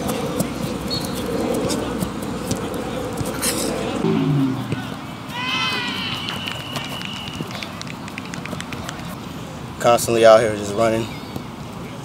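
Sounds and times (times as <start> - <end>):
distant voices: 0.0 - 10.0
short low call: 4.0 - 5.0.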